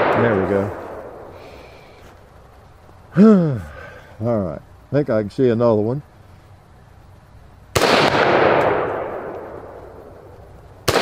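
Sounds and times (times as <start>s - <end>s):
rifle shots with echo: 0.0s - 1.3s, 7.7s - 11.0s.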